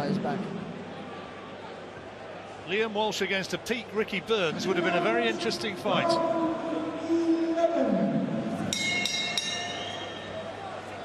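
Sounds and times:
boxing ring bell ringing: 8.7 - 10.5.

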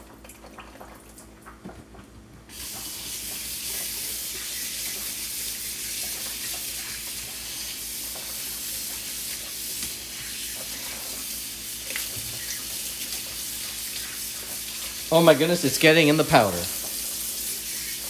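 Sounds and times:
faucet water running into sink: 2.5 - 18.0.

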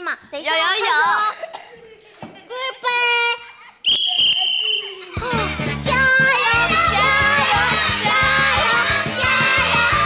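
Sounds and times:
referee's whistle blast: 3.8 - 5.0.

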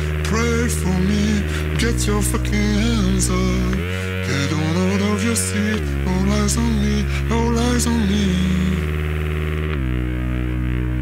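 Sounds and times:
synthesizer low droning note: 0.0 - 11.0.

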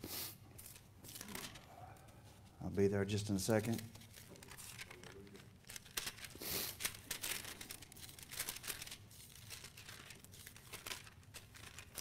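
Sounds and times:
thin paper pages turning: 0.6 - 1.7, 3.5 - 12.0.

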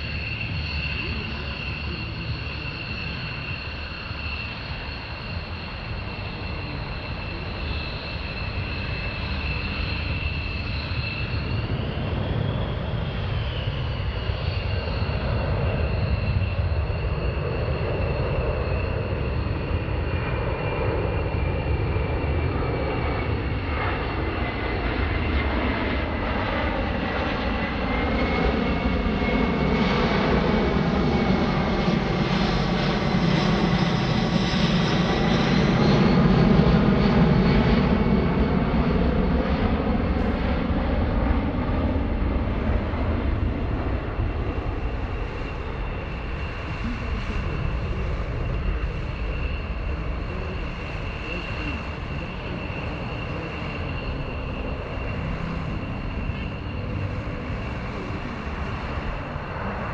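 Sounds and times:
jet aircraft roar and whine: 0.0 - 59.9.

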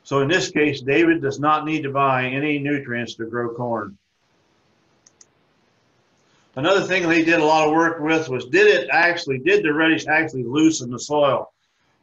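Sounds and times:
computer mouse clicks: 5.0 - 5.3.

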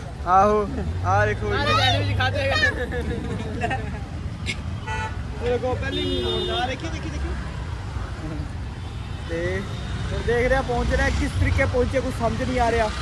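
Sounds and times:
people talking and laughing: 0.0 - 4.8, 5.4 - 8.6
street traffic: 0.0 - 13.0
vehicle horn: 5.8 - 6.8.

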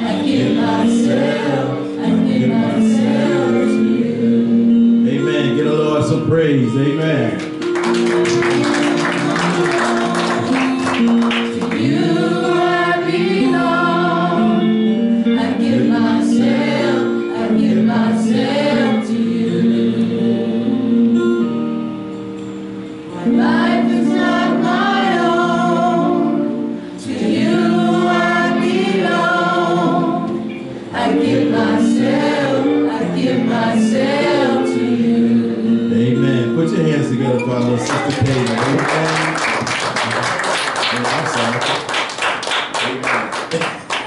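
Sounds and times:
gospel singing: 0.0 - 21.9, 23.0 - 43.2
instrumental accompaniment: 0.0 - 44.0.

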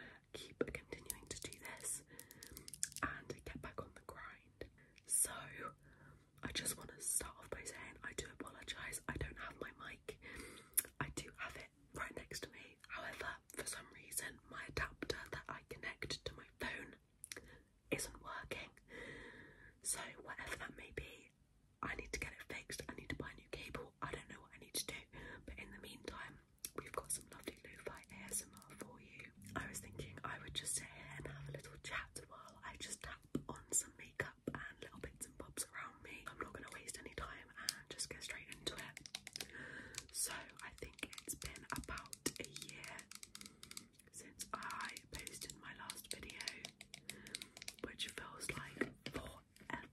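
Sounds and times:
person whispering: 0.0 - 5.8, 6.4 - 10.2, 10.8 - 17.0, 17.9 - 18.8, 19.8 - 49.9.

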